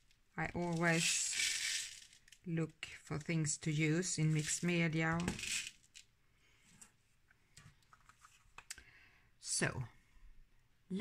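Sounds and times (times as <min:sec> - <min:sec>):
card rustling: 0:07.7 - 0:08.7.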